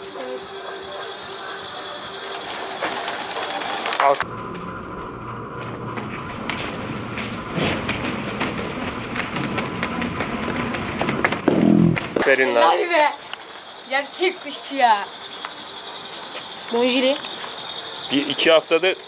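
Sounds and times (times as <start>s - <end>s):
pigeon cooing: 0.0s - 4.2s
pigeons flapping wings: 0.0s - 4.2s, 6.5s - 19.0s.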